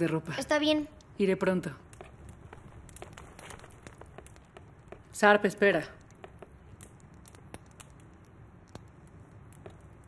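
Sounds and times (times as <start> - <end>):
faint irregular clicks and ticks: 0.0 - 10.0.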